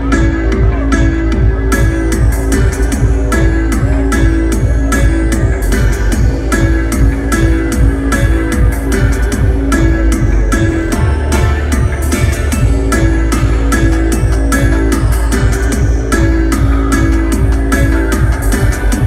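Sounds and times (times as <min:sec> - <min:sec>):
electronic dub music: 0:00.0 - 0:19.0.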